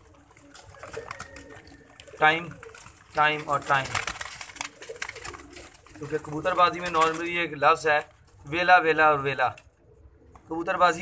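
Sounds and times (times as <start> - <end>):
pigeons cooing: 0.0 - 7.4, 8.2 - 11.0.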